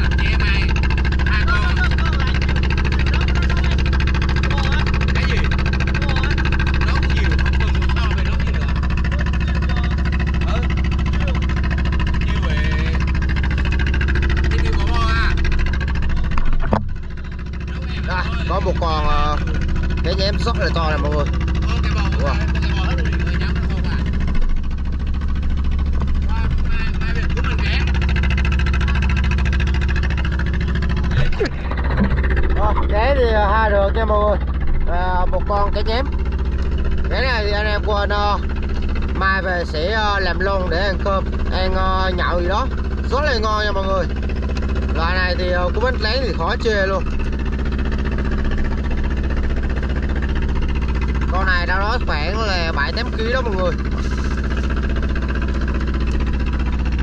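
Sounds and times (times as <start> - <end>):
boat engine droning: 0.0 - 57.0.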